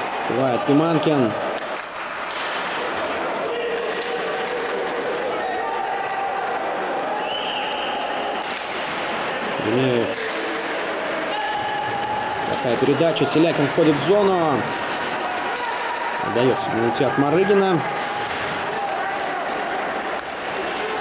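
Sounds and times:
sticks and puck clacking: 0.0s - 5.6s, 7.9s - 21.0s
crowd and arena noise: 0.0s - 21.0s
skating on ice: 8.3s - 21.0s.

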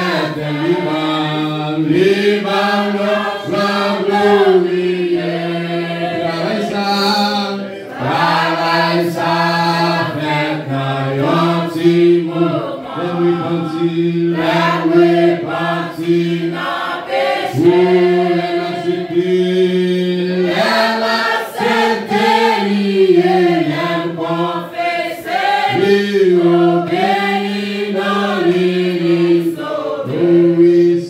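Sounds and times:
congregation singing a hymn: 0.0s - 31.0s.

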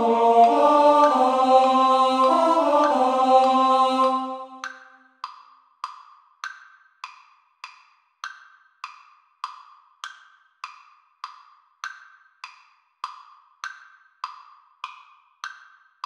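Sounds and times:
wood-block metronome clicks: 0.0s - 3.6s, 4.6s - 16.0s
choir singing chord: 0.0s - 4.9s.

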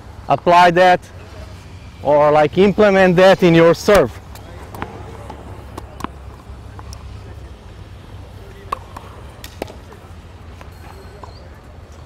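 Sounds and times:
racket striking ball: 4.3s - 7.0s, 8.6s - 11.4s
tennis ball bouncing: 4.3s - 7.1s, 8.5s - 11.4s.

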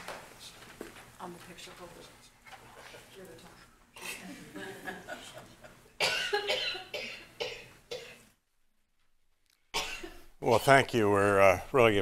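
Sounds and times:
person coughing: 6.0s - 8.4s, 9.7s - 10.3s.

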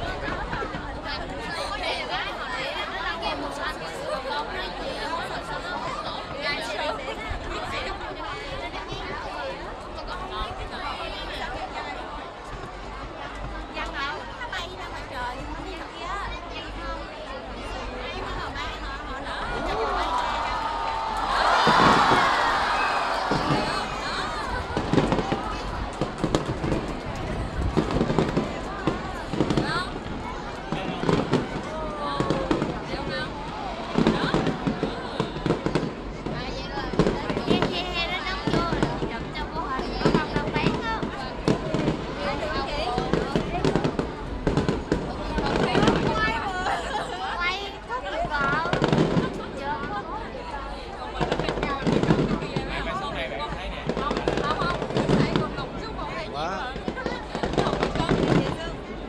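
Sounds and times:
fireworks bursting with bangs: 20.9s - 46.5s, 48.3s - 50.0s, 51.2s - 58.9s.

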